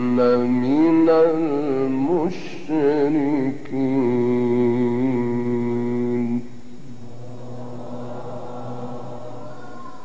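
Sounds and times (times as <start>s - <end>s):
man reciting melodically: 0.0s - 7.0s
quiet background noise: 0.0s - 10.0s.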